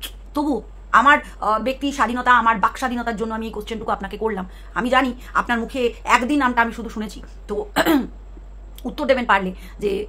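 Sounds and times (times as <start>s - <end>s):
woman clearing her throat: 7.8s - 8.1s.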